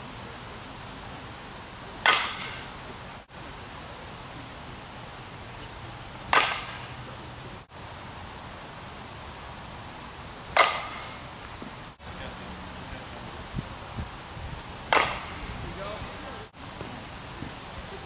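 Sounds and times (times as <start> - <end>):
steady hiss: 0.0 - 18.0.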